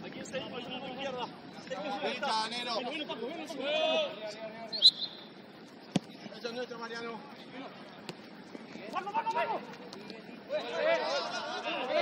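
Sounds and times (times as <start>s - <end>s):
ball being kicked: 5.9s - 6.2s
players shouting: 8.8s - 12.0s.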